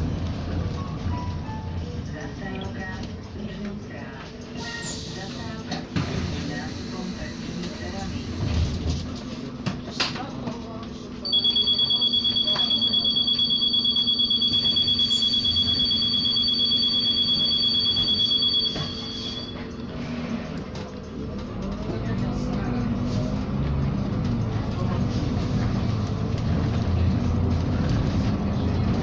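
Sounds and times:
electronic alarm rapid high beeps: 11.3s - 19.9s.

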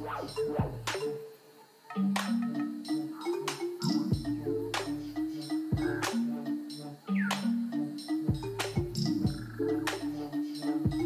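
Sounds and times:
electronic dance music: 0.0s - 1.0s, 3.0s - 11.0s
sharp percussion hits: 0.0s - 1.2s, 2.0s - 11.0s.

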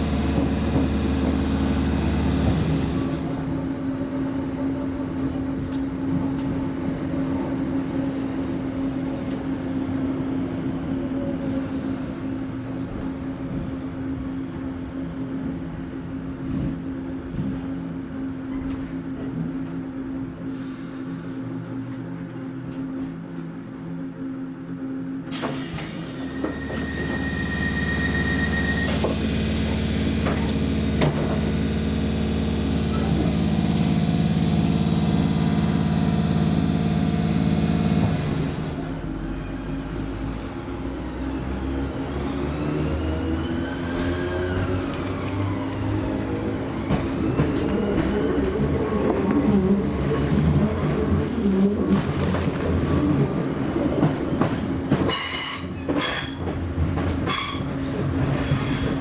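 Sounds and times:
train drone: 0.0s - 59.0s
train hum: 0.0s - 59.0s
rising and falling squeals: 26.2s - 29.2s.

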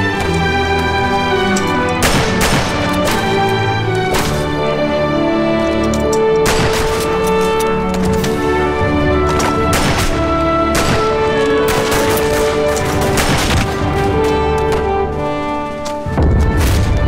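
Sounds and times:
dramatic film score: 0.0s - 17.0s
rifle shots cracking: 1.9s - 3.5s, 6.4s - 7.4s, 9.3s - 14.0s.

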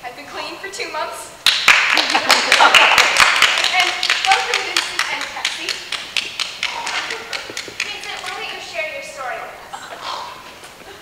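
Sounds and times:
group clapping: 1.4s - 9.0s.

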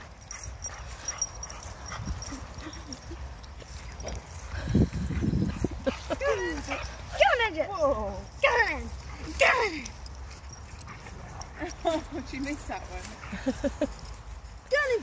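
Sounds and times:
wind rumble on microphone: 0.9s - 7.2s.

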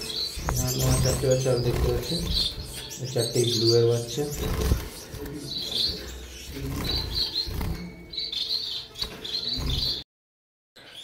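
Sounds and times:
finches chirping: 0.0s - 10.0s.

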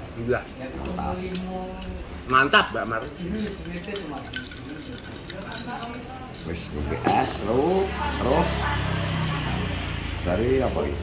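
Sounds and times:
straw clinking against glass: 0.8s - 7.4s.

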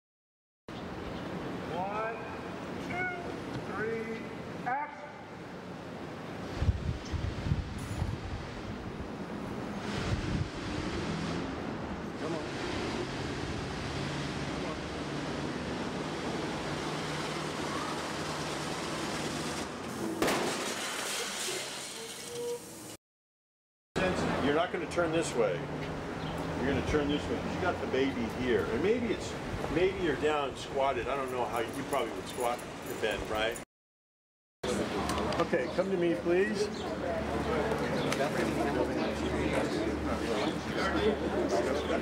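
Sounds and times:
traffic rushing: 8.9s - 20.2s, 24.0s - 30.6s.

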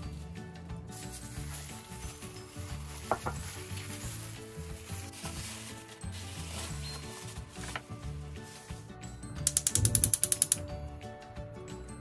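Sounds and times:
background music: 0.0s - 12.0s
rapid sharp mechanical clicks: 9.5s - 10.6s.

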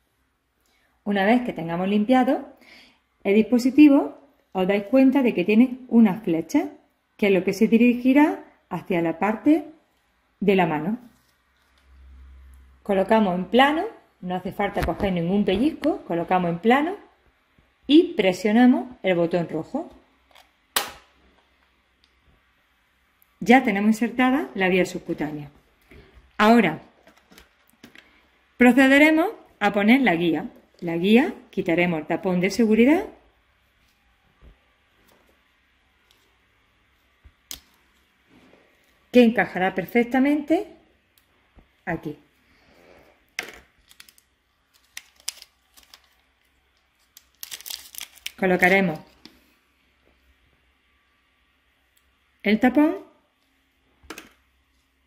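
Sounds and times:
plastic parts crackling: 43.4s - 49.3s.

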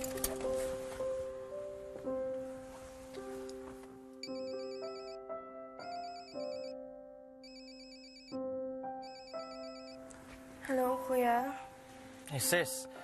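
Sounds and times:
soft background music: 0.0s - 13.0s
mobile phone ringtone warbling: 4.2s - 5.2s, 5.9s - 6.8s, 7.4s - 8.4s, 9.0s - 10.0s.

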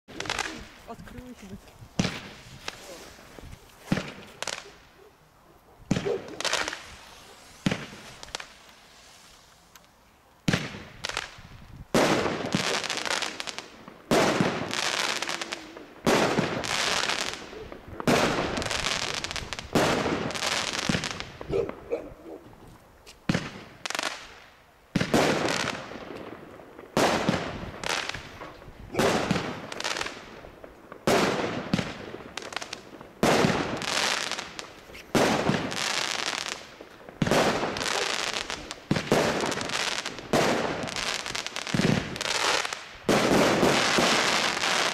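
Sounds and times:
crackle of firework stars: 0.1s - 21.9s, 22.7s - 44.9s
firework bangs: 2.0s - 3.2s, 3.8s - 4.9s, 5.9s - 9.3s, 10.4s - 21.9s, 23.2s - 44.9s.

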